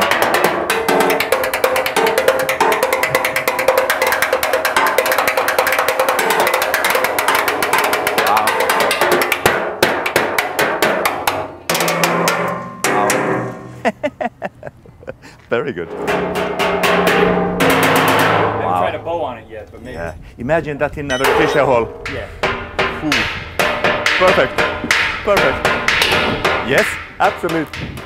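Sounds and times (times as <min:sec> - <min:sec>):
sticks drumming on scrap metal: 0:00.0 - 0:13.8, 0:21.1 - 0:28.0
lower-pitched object struck: 0:21.1 - 0:22.2.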